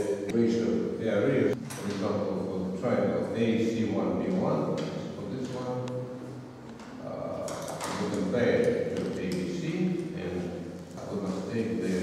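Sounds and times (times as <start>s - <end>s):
man talking: 0.0s - 6.2s, 7.0s - 12.0s.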